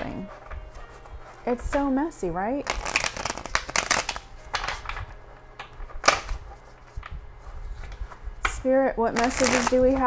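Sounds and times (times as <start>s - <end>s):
cards being shuffled: 2.6s - 8.2s, 9.1s - 10.0s.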